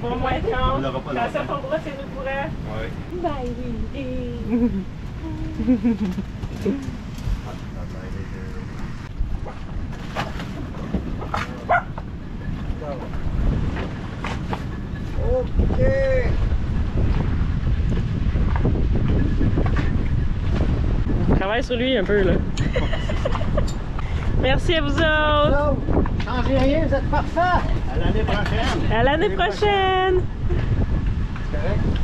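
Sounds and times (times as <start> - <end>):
wind buffeting microphone: 0.0 - 32.0.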